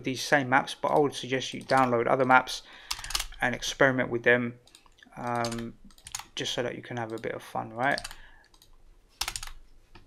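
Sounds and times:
computer keys clicking: 0.8 - 3.4, 4.6 - 6.4, 7.0 - 10.0.

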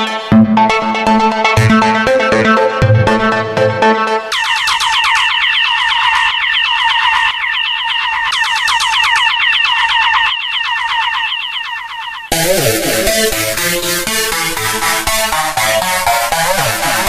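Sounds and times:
bass and beat: 0.0 - 5.8, 12.3 - 17.0
synthesizer downward-sweeping zaps: 0.0 - 17.0.

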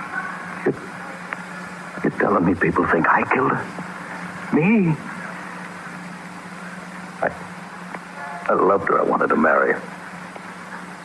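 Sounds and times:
radio broadcast hum and hiss: 0.0 - 11.0.

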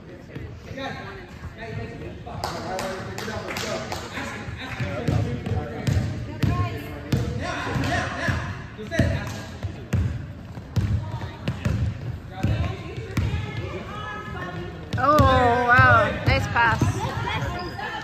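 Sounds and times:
voices in gymnasium: 0.0 - 18.0
basketball bouncing on wooden floor: 9.9 - 13.7.

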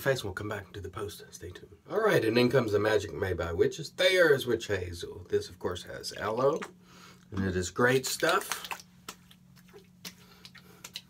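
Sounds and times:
hands patting skin: 7.9 - 11.0.

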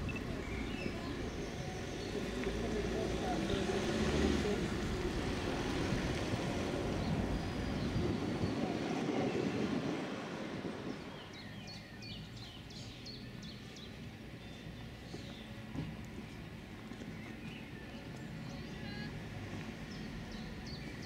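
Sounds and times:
voices: 0.0 - 12.9, 15.2 - 21.0
vehicle low rumble: 0.0 - 21.0.

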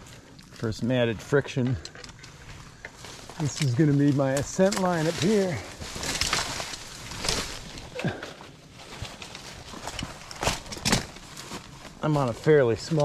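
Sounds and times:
climbing rope handled on tree: 1.6 - 13.0
footsteps in dry leaves: 2.4 - 13.0.

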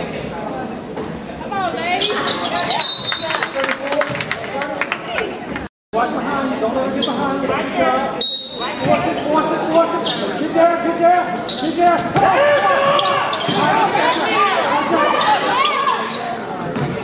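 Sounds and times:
people shouting: 12.2 - 16.0.

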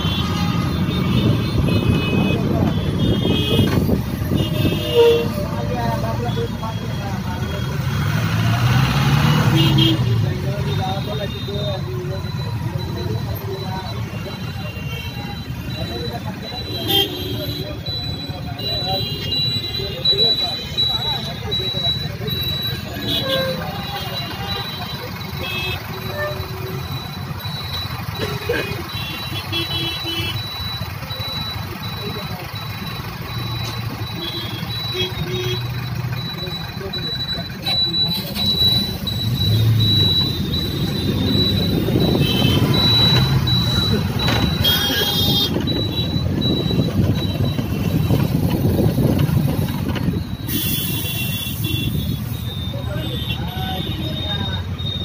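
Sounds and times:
car horn toots: 0.0 - 6.6, 22.4 - 26.8, 28.1 - 30.6, 37.7 - 55.0
engines and tyre noise: 0.0 - 55.0.

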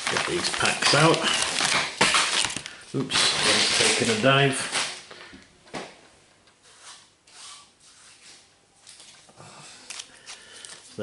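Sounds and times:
plastic wrapper crinkling: 0.0 - 5.2, 9.8 - 11.0.

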